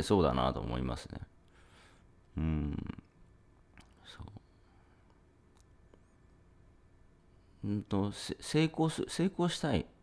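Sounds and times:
faint breath: 1.5s - 2.1s
person murmuring: 2.3s - 3.2s.

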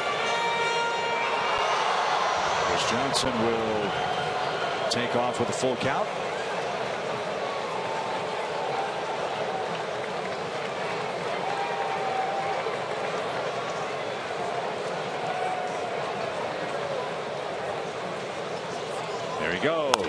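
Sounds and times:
crowd din: 0.0s - 11.3s.

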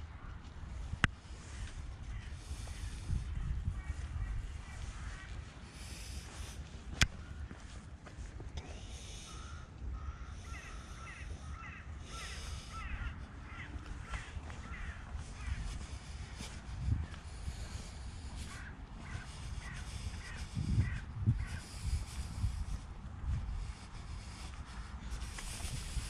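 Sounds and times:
crows cawing: 1.4s - 22.8s, 23.6s - 26.0s
rustling from walking: 12.1s - 26.0s.

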